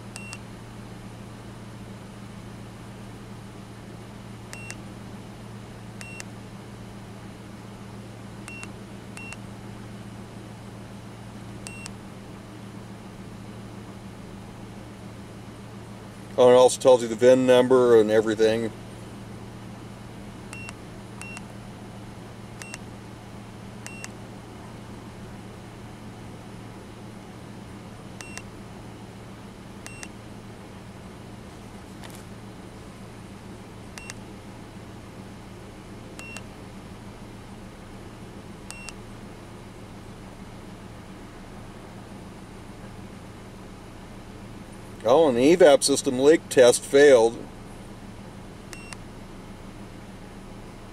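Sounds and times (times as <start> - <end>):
engine idling hum: 0.0 - 50.9.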